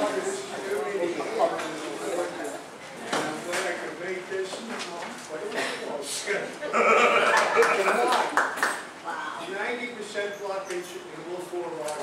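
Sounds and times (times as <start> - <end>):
indistinct speech in a hall: 0.0 - 12.0.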